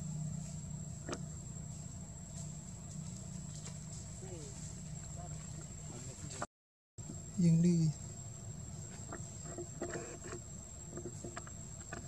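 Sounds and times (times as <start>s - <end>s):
steady high-pitched whine: 0.0s - 12.0s.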